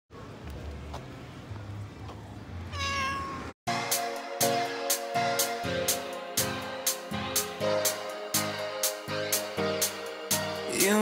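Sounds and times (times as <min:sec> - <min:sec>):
faint street background: 0:00.1 - 0:11.0
cat meowing: 0:02.7 - 0:03.5
music: 0:03.7 - 0:11.0.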